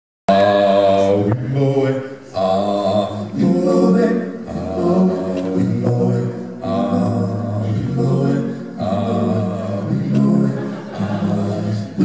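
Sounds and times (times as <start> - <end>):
male a cappella group singing: 0.3 - 12.0.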